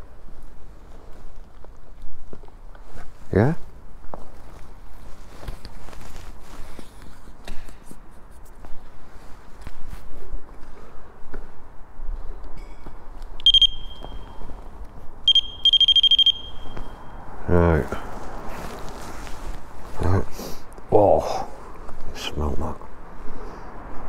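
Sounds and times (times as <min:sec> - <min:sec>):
footsteps crunching over rubble: 0:00.2 - 0:07.4
high electronic beeps: 0:13.4 - 0:14.4, 0:15.3 - 0:17.2.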